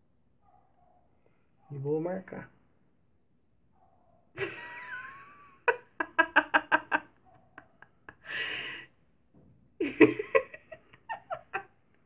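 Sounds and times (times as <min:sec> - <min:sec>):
woman laughing: 0:04.4 - 0:08.8, 0:09.8 - 0:11.8.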